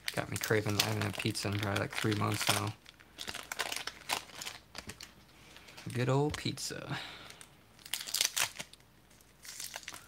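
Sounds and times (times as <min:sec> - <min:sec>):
paper wrapper crinkling and tearing: 0:00.0 - 0:06.5, 0:07.2 - 0:10.0.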